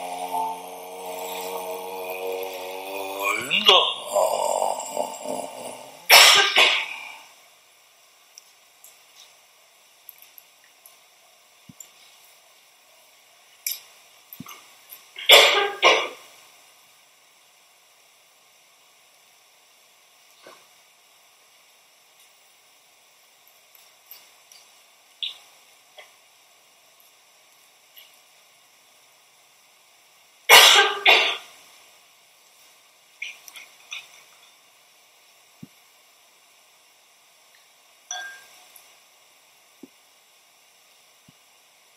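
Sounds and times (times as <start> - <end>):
person coughing: 2.9 - 7.2, 15.3 - 16.2, 30.5 - 31.5
faint ticks and rustles: 8.3 - 12.6, 23.2 - 26.2.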